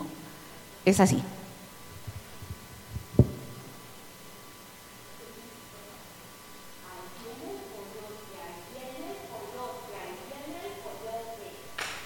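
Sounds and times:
sound system hum: 0.0s - 12.0s
microphone handling thumps: 1.9s - 3.7s.

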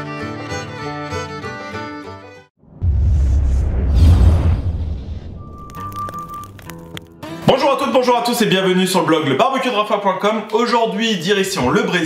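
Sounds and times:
deep booming hit: 2.6s - 6.8s.

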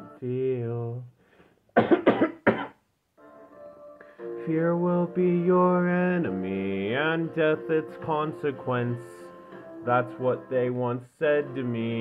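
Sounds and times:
man coughing: 1.8s - 2.8s
person singing: 4.2s - 12.0s.

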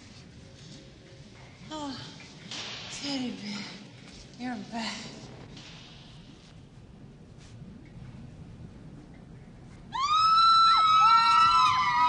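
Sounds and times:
high-pitched screams: 10.0s - 12.0s.

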